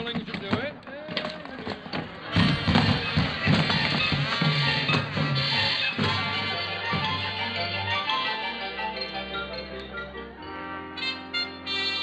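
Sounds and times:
orchestral musical bridge: 2.4s - 12.0s.

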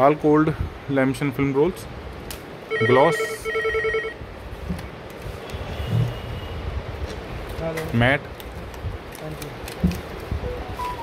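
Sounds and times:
low background noise: 0.0s - 11.0s
electronic telephone ringing: 2.7s - 4.2s.

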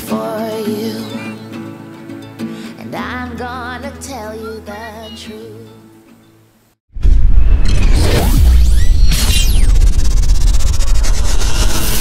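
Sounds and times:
deep rumble with flutter: 7.0s - 12.0s.

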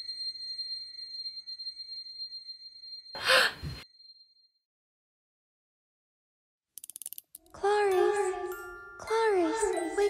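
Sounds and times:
faint high ringing tone: 0.0s - 4.7s
girl gasping: 3.2s - 3.8s.

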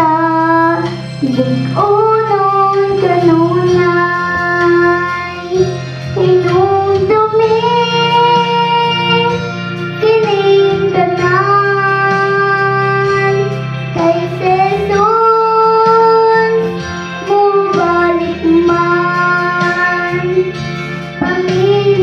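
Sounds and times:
girl singing into a microphone: 0.0s - 22.0s
instrumental accompaniment: 0.0s - 22.0s.

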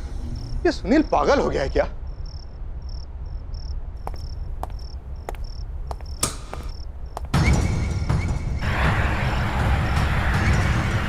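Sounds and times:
crickets chirping: 0.0s - 8.6s.

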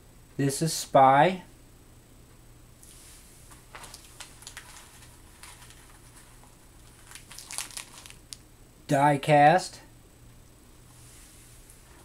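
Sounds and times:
cord rustling in hands: 2.8s - 8.4s.

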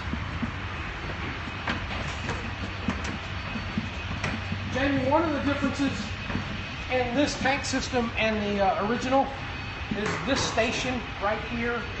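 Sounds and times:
footsteps walking: 0.0s - 11.0s
steady low hum: 0.0s - 12.0s.

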